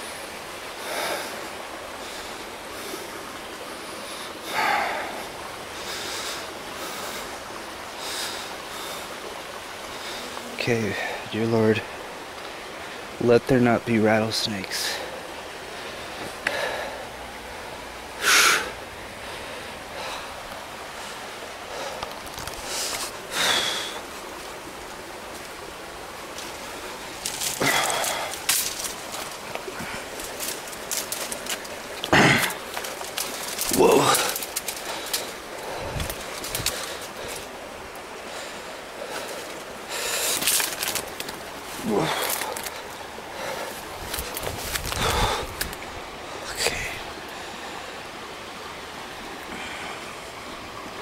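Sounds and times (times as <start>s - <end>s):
steady outdoor hiss: 0.0s - 51.0s
branches rustling and scraping: 18.1s - 49.4s.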